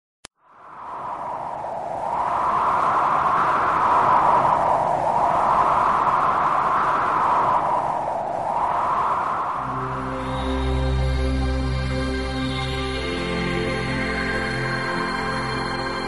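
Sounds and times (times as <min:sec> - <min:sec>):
rushing wind-like whoosh: 0:00.4 - 0:16.0
music with sustained notes: 0:09.6 - 0:16.0.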